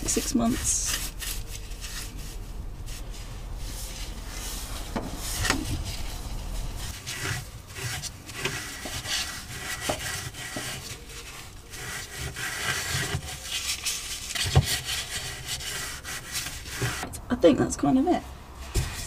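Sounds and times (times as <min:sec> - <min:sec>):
paint brush scrubbing metal: 0:00.0 - 0:17.1.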